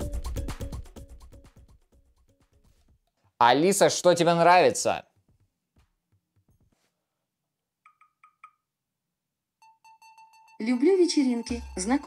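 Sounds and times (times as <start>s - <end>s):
ticking tones: 7.8s - 8.7s.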